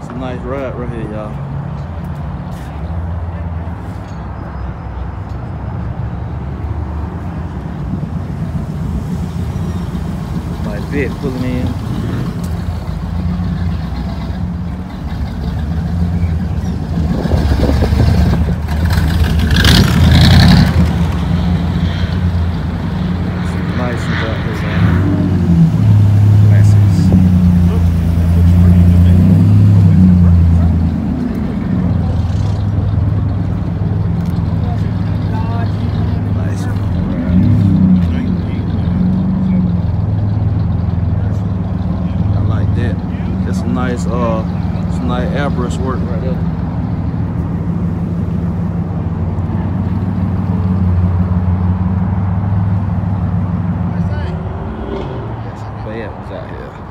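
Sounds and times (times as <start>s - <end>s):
car engines rumbling past: 0.0s - 56.9s.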